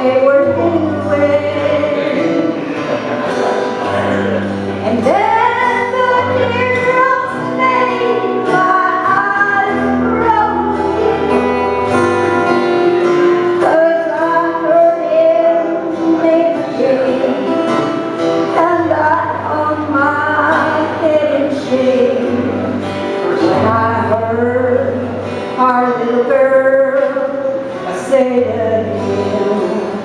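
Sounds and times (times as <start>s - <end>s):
long held bass notes: 0.0s - 26.9s
acoustic guitar strumming: 0.0s - 30.0s
sustained melodic lead line: 0.0s - 30.0s.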